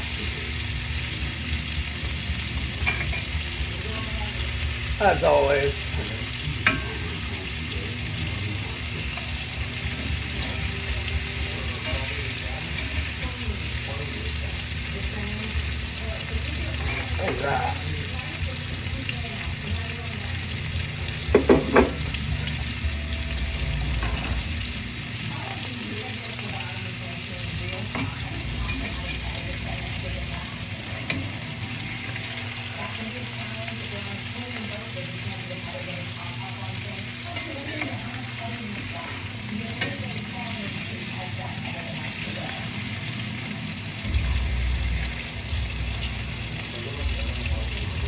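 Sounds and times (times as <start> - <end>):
food sizzling in a frying pan: 0.0 - 48.0
spoon knocking against pan: 21.3 - 22.1.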